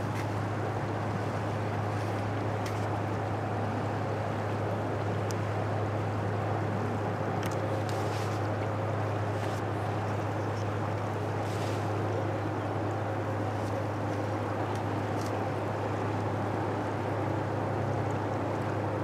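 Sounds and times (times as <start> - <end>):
ship diesel engines droning: 0.0 - 19.0
water wash and ripples: 0.0 - 19.0.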